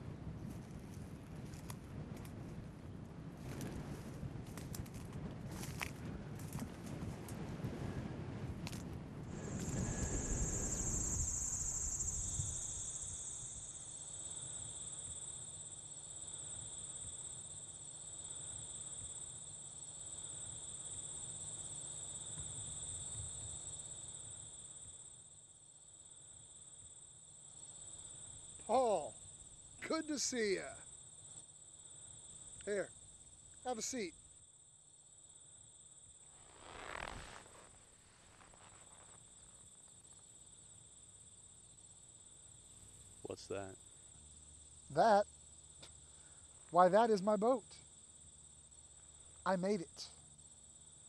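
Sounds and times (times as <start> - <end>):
rustling rush of noise: 4.9 - 12.6, 36.2 - 39.8
insects chirring: 9.3 - 51.0.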